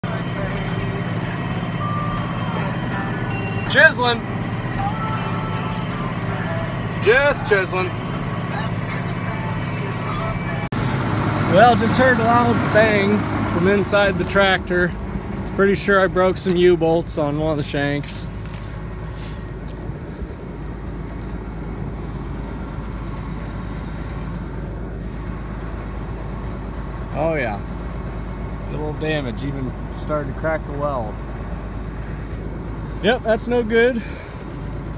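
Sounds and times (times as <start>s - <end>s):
tractor diesel engine under load: 0.0s - 34.9s.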